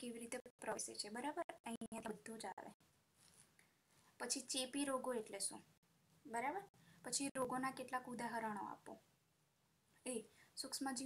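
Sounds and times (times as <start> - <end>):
woman speaking: 0.0 - 2.8, 4.2 - 5.7, 6.3 - 9.1, 10.0 - 11.0
faint room noise: 0.0 - 11.0.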